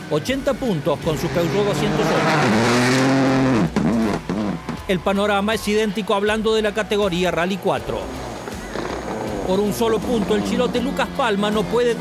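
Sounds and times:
rally car engine revving: 0.8s - 4.9s, 7.8s - 12.0s.

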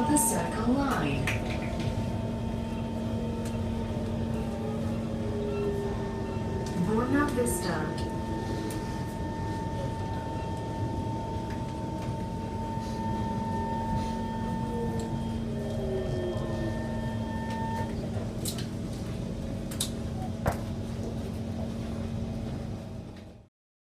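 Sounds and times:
motor whine: 0.0s - 18.0s
train car rumble: 0.0s - 23.5s.

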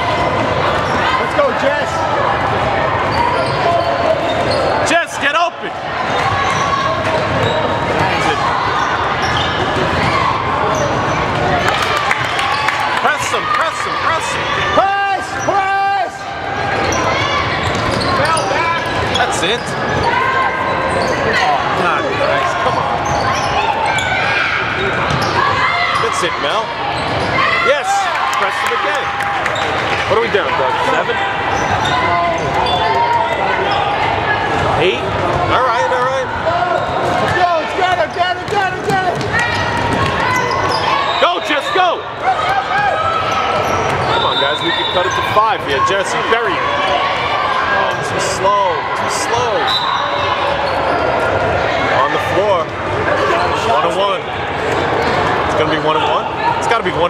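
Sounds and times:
crowd voices and shouts: 0.0s - 57.0s
basketball bouncing on court: 25.0s - 25.4s, 38.0s - 40.6s.

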